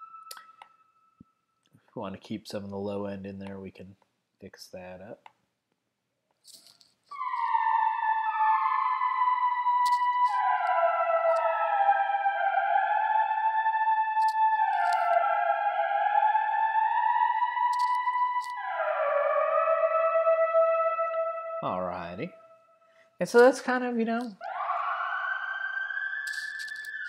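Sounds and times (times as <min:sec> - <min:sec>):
synth lead melody with reverb: 0:00.0 - 0:01.1, 0:07.1 - 0:22.9, 0:24.4 - 0:27.0.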